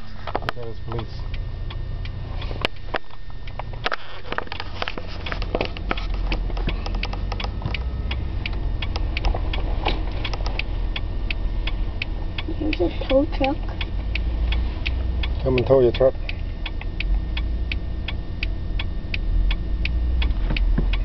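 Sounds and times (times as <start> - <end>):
car road and engine rumble: 0.0 - 21.0
small irregular clicks and taps: 2.5 - 10.7, 20.2 - 21.0.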